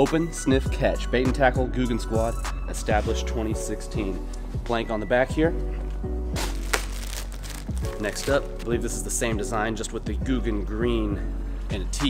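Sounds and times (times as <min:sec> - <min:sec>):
background music with bass: 0:00.0 - 0:12.0
sharp crackle: 0:06.4 - 0:08.7
plastic bag rustling: 0:06.4 - 0:08.8.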